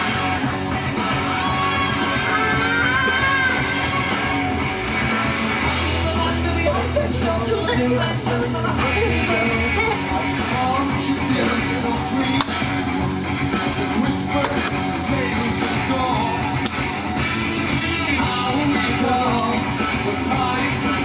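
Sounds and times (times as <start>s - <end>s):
rock song with guitar and singing: 0.0s - 21.0s.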